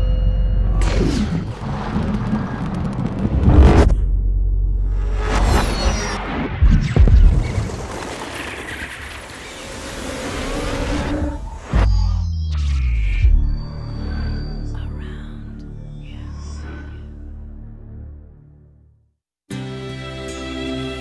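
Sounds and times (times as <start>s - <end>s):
deep booms and rumbles: 0.0s - 5.5s.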